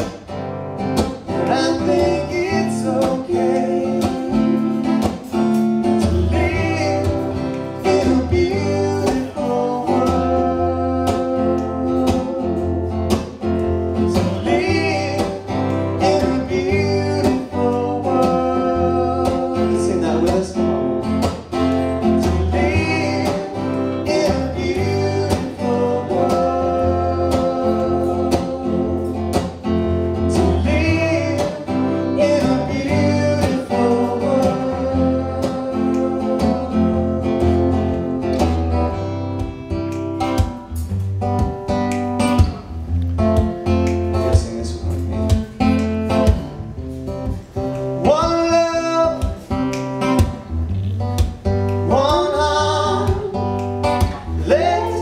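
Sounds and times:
acoustic guitar strumming: 0:00.0 - 0:55.0
person singing: 0:01.3 - 0:05.3, 0:06.0 - 0:12.9, 0:14.1 - 0:20.6, 0:21.8 - 0:29.2, 0:30.3 - 0:37.9, 0:51.8 - 0:55.0.

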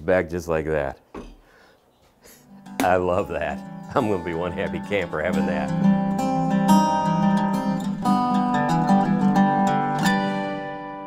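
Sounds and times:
acoustic guitar music: 0:02.3 - 0:11.0.

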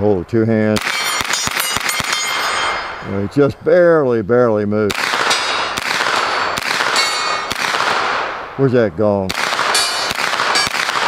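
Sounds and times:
carbine gunshots: 0:00.8 - 0:03.3, 0:04.9 - 0:08.7, 0:09.3 - 0:11.0
steel targets ringing: 0:00.8 - 0:03.6, 0:05.2 - 0:07.6, 0:09.6 - 0:11.0.

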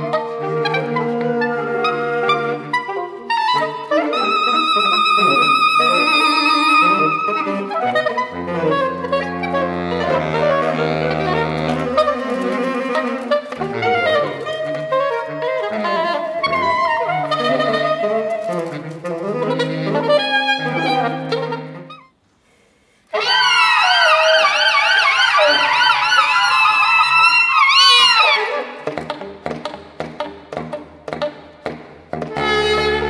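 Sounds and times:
saxophone quartet playing: 0:00.0 - 0:22.2, 0:32.1 - 0:33.0.

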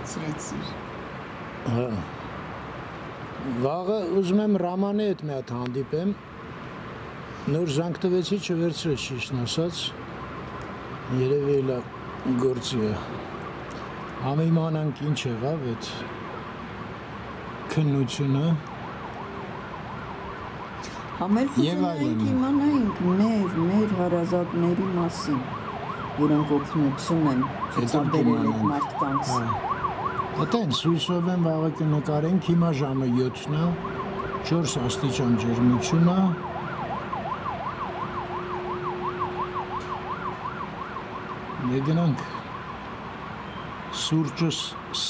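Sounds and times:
city traffic hum: 0:00.0 - 0:45.0
distant siren wailing: 0:05.8 - 0:45.0
person speaking: 0:26.2 - 0:29.6.

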